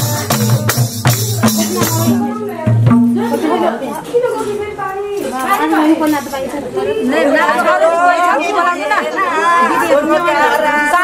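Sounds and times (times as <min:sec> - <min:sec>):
women chattering: 0:01.3 - 0:11.0.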